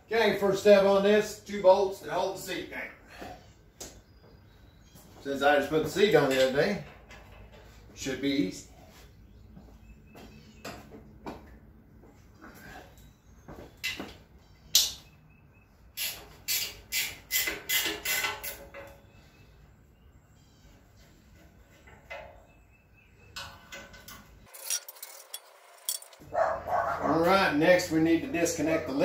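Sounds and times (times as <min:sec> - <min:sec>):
wrench clinking on metal bolts: 0:23.4 - 0:26.2.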